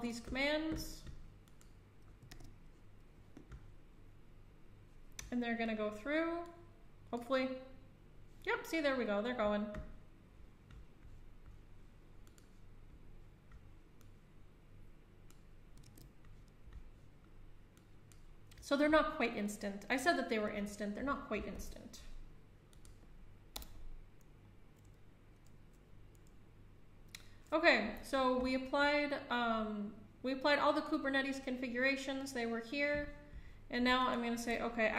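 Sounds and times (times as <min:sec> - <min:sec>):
low room hum: 0:00.0 - 0:34.9.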